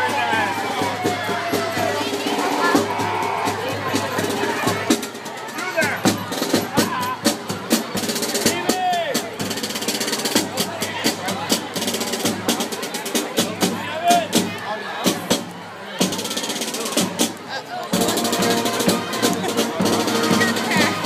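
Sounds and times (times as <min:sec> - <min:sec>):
parade band music: 0:00.0 - 0:21.0
snare and bass drum beats: 0:00.0 - 0:21.0
spectators chatter: 0:00.0 - 0:21.0.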